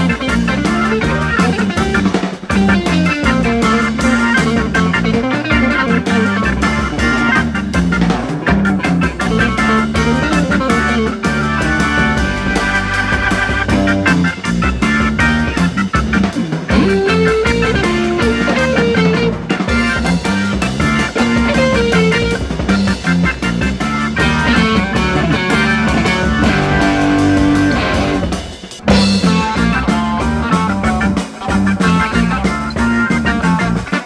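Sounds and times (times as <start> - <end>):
bass guitar: 0.0 - 34.0
drums: 0.0 - 34.0
electric guitar: 0.0 - 34.0.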